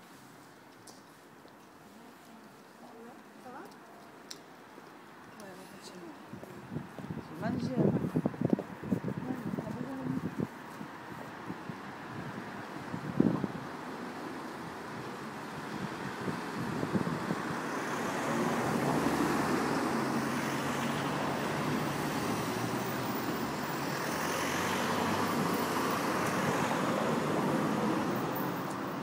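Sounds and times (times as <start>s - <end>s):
vehicle engine and tyres: 6.1s - 29.0s.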